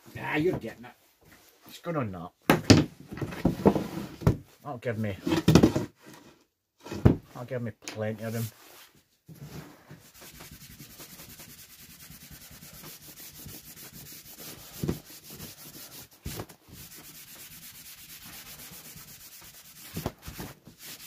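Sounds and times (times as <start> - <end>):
hand sanding board: 10.0 - 21.0.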